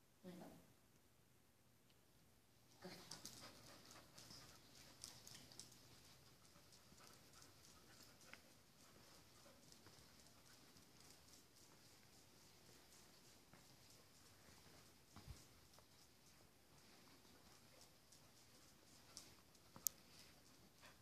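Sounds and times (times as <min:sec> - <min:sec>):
dog claws clicking on hard floor: 0:02.9 - 0:16.4.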